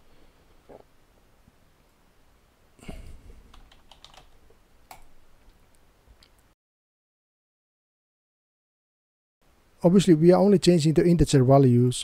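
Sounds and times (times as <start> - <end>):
keyboard keystrokes: 3.5 - 4.3.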